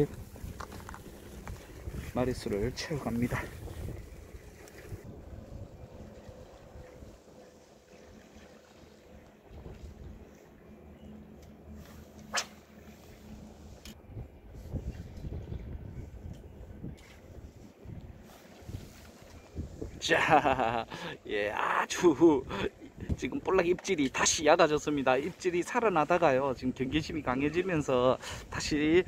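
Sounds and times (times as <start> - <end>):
wind on microphone: 0.0 - 7.3, 13.2 - 20.9, 22.4 - 23.6
boat engine rumble: 0.0 - 29.0.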